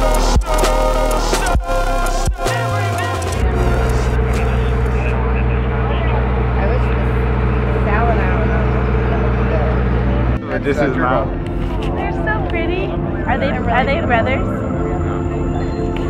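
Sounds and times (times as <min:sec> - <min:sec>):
people talking: 0:02.6 - 0:16.0
low mechanical hum: 0:02.8 - 0:16.0.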